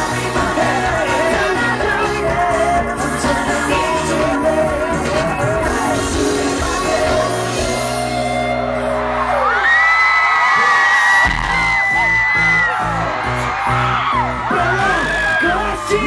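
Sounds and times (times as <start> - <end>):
live band and vocals: 0.0 - 9.6, 10.9 - 16.0.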